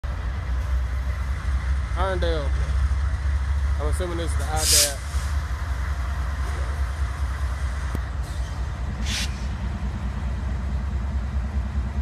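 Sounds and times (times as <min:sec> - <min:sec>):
diesel locomotive rumbling: 0:00.0 - 0:12.0.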